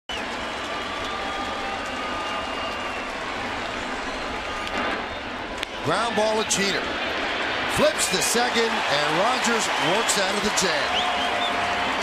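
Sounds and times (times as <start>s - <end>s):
stadium crowd noise: 0.1s - 12.0s.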